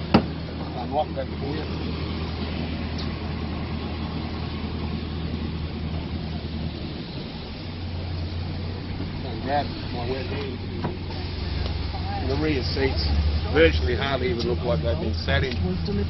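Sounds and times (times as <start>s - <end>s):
car engine idling: 0.0s - 16.0s
traffic noise: 0.0s - 16.0s.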